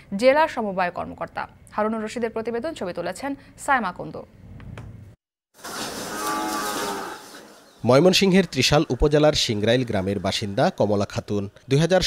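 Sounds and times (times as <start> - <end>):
cow mooing: 6.0 - 7.4.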